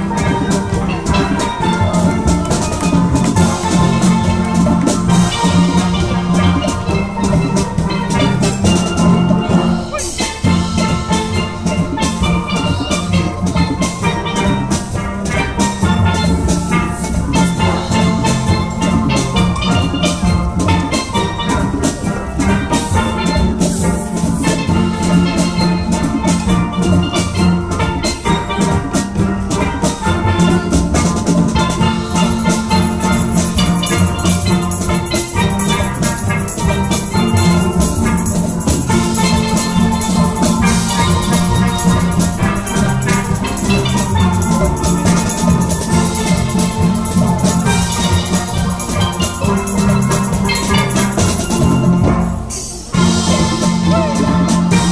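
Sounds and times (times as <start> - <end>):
drum rhythm: 0.0 - 54.9
steelpans playing a tune: 0.0 - 54.9.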